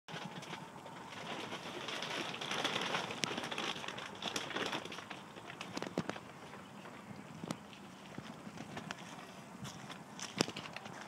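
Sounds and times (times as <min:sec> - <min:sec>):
steady rustling: 0:00.1 - 0:11.0
birds calling: 0:00.2 - 0:11.0.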